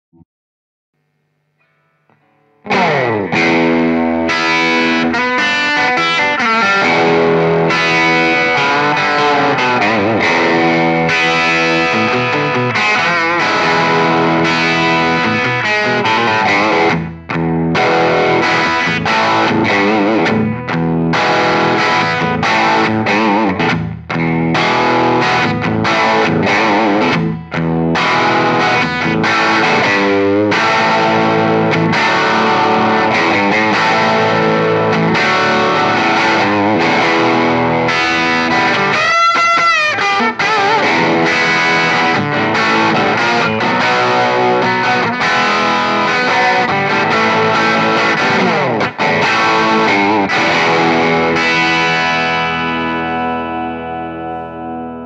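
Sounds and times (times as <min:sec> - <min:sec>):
electric guitar playing: 0:01.0 - 0:55.0.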